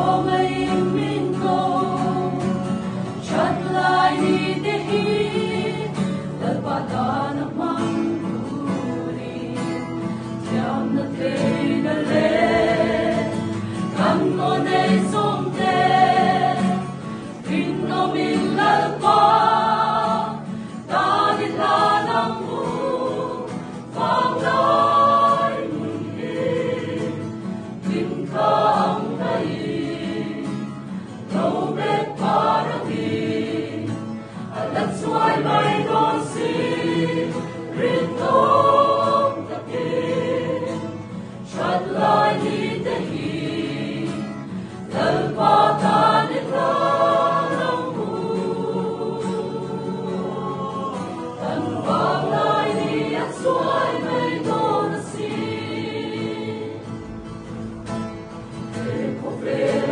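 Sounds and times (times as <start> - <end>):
acoustic guitar: 0.0 - 59.9
mixed choir singing a hymn: 0.0 - 59.9.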